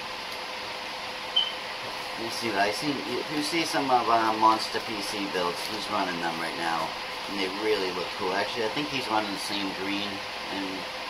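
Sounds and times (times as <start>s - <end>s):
faint hum: 0.0s - 11.0s
computer fans whooshing: 1.4s - 11.0s.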